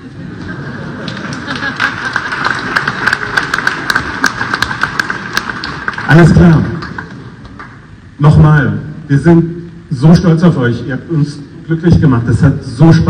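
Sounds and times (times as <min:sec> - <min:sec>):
crowd applauding: 0:00.4 - 0:07.8.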